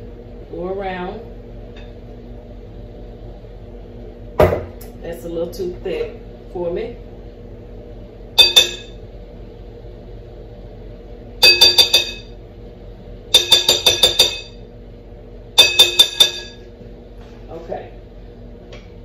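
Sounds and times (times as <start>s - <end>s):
utensil tapping glass bowl: 11.4s - 12.3s, 13.4s - 14.6s, 15.6s - 16.6s.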